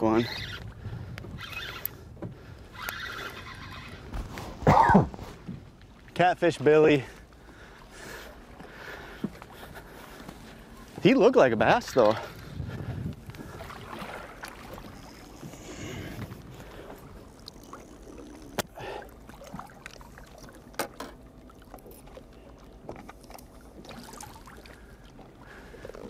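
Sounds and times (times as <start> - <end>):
low wind rumble: 0.0 - 6.0, 11.7 - 18.8
water lapping against boat hull: 0.0 - 26.0.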